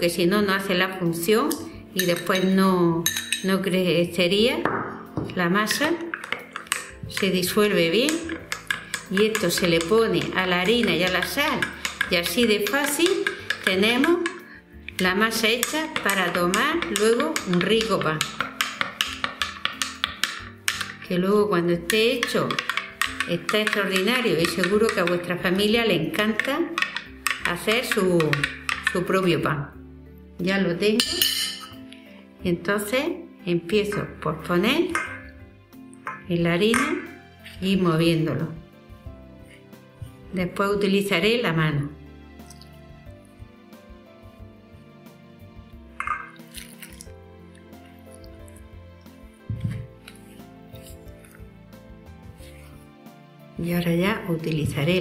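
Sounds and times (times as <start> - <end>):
background music: 0.0 - 55.0
metal spoon clinking against glass: 2.0 - 3.5, 31.0 - 31.8
wooden spoon mixing flour: 5.6 - 29.3, 46.5 - 52.9
water pouring into bowl: 46.0 - 47.1.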